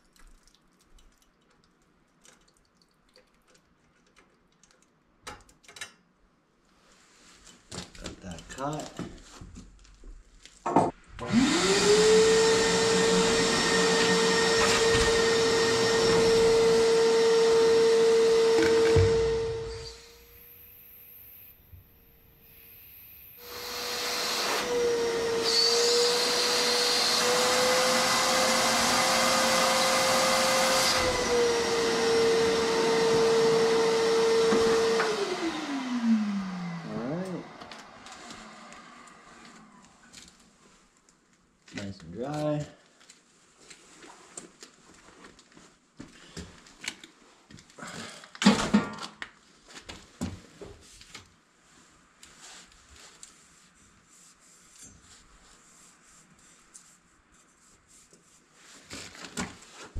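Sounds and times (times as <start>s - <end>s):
electric motor running: 11.2s - 20.0s.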